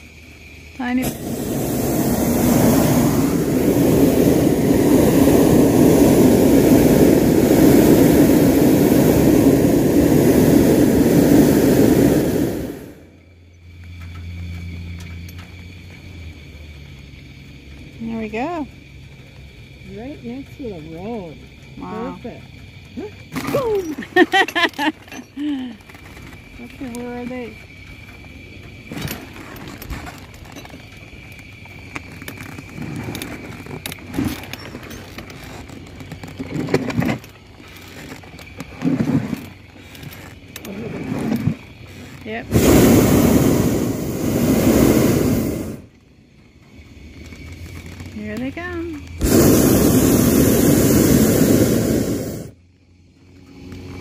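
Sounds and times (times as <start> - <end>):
propane burner blasting: 0.0 - 54.0.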